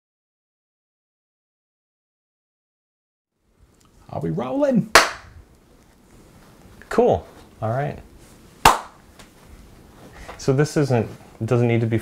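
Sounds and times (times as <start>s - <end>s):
sharp hand clap: 4.9s - 5.3s, 8.6s - 9.0s.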